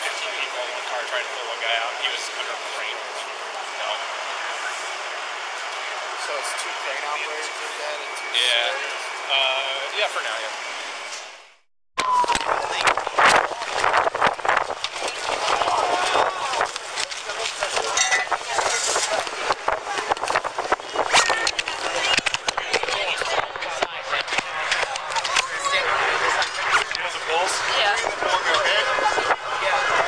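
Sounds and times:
indistinct voices: 0:12.0 - 0:30.0
camera rubbing and knocking: 0:12.8 - 0:25.4.

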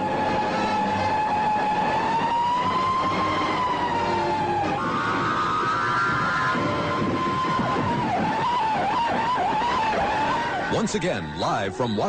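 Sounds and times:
wavering siren-like tone: 0:00.0 - 0:12.0.

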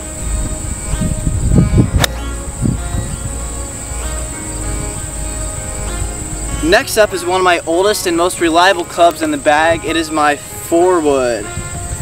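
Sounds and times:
golf club striking ball: 0:02.0 - 0:02.3.

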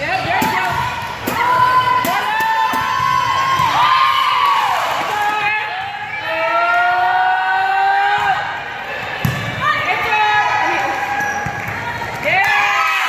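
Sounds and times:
volleyball hit: 0:00.2 - 0:04.0, 0:09.0 - 0:09.7.

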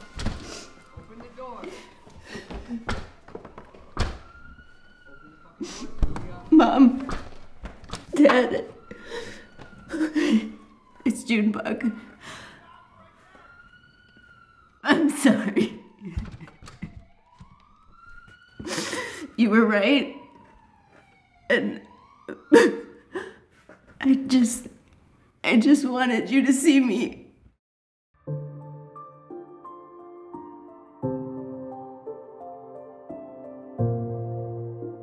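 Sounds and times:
faint siren wail: 0:00.0 - 0:23.5
woman sobbing: 0:01.6 - 0:02.9, 0:08.2 - 0:10.8, 0:14.8 - 0:17.0, 0:18.6 - 0:19.4, 0:21.5 - 0:23.5.

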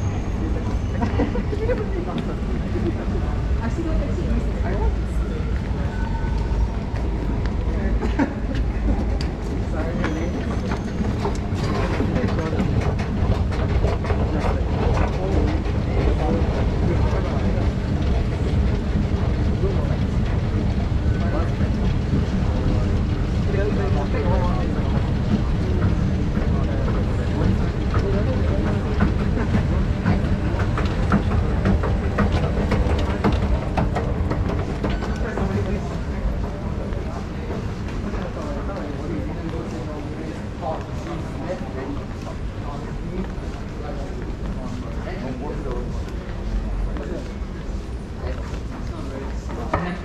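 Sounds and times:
chatter of passengers: 0:00.0 - 0:50.0.

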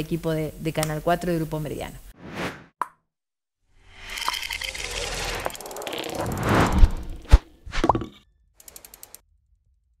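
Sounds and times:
quick run of clicks: 0:08.6 - 0:09.2.

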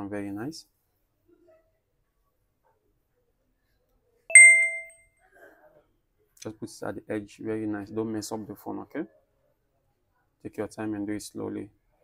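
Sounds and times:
bright bell chime: 0:04.3 - 0:04.9.

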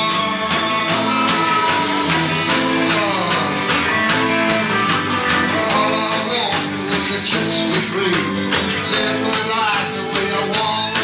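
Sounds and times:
guitar: 0:00.0 - 0:11.0
live rock band playing: 0:00.0 - 0:11.0
steady drum beat: 0:00.0 - 0:11.0.

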